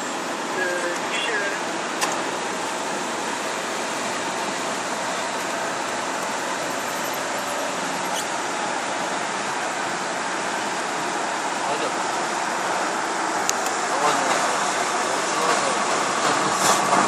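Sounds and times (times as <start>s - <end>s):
car road noise: 0.0s - 17.0s.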